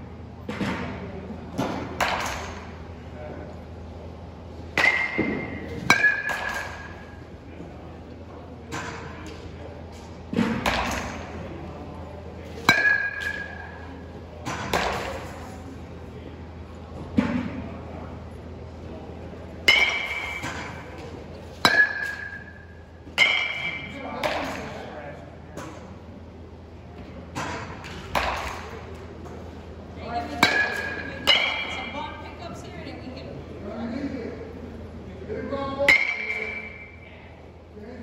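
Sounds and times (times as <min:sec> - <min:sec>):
low steady hum: 0:00.0 - 0:38.0
bat striking ball: 0:01.6 - 0:02.7, 0:04.7 - 0:07.2, 0:10.4 - 0:11.3, 0:12.6 - 0:13.8, 0:19.7 - 0:24.6, 0:27.3 - 0:28.8, 0:30.4 - 0:32.0, 0:35.9 - 0:37.0.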